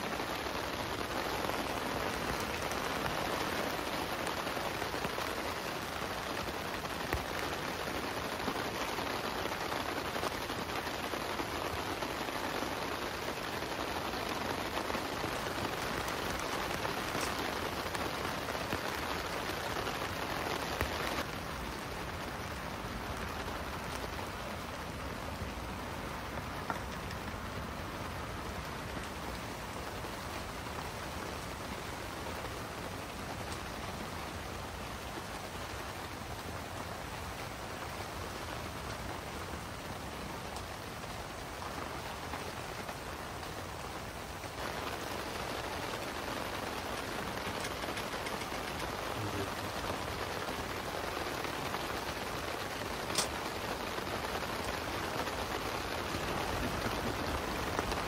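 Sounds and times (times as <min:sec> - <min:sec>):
rain on tent fabric: 0:00.0 - 0:58.0.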